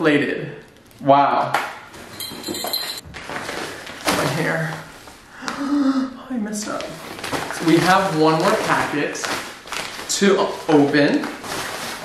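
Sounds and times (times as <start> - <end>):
paper mailer rustling and crinkling: 3.0 - 5.1, 6.8 - 12.0.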